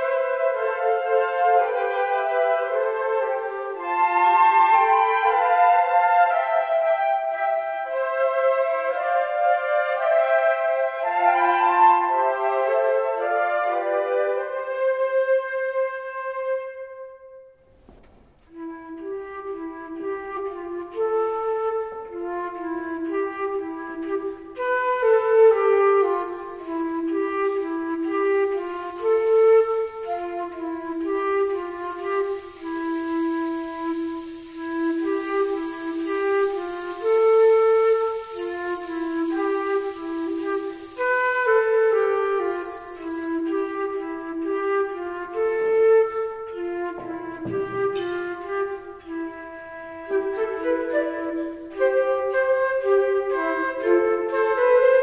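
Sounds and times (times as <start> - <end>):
flute playing low melody: 0.0 - 17.3, 18.5 - 55.0.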